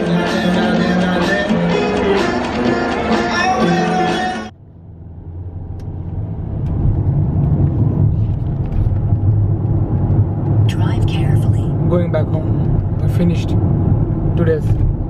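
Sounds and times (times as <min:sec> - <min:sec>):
car engine and tyre rumble: 0:00.0 - 0:15.0.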